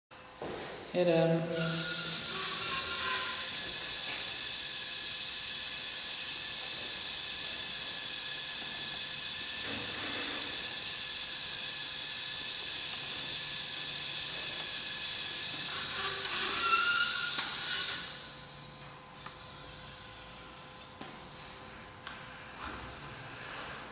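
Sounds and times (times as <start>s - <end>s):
robot drive motors whining: 1.5s - 23.9s.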